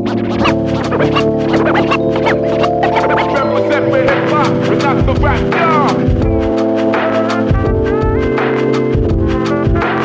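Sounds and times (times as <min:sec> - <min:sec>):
lo-fi hip-hop beat: 0:00.0 - 0:10.0
vinyl record scratching: 0:00.0 - 0:10.0.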